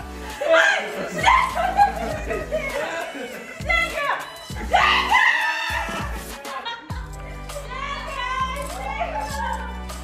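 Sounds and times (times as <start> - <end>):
background music: 0.0 - 10.0
people screaming and laughing: 0.1 - 10.0.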